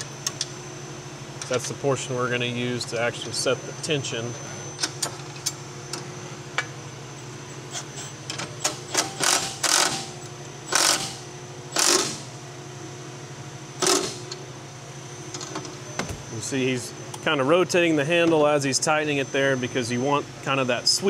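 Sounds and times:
cordless ratchet running: 8.7 - 10.1, 10.7 - 12.2.

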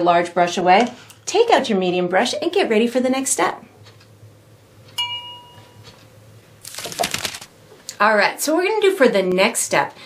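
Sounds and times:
bell-like chime: 5.0 - 5.8.

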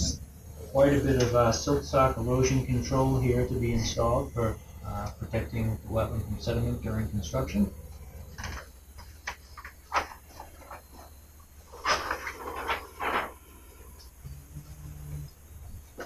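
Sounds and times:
paper sheets rustling: 8.4 - 14.1
short low hum: 12.5 - 16.0.

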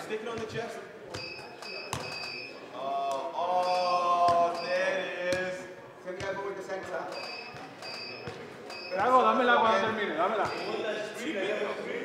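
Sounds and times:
short high beeps: 1.2 - 2.6, 7.1 - 9.2, 10.4 - 11.0.

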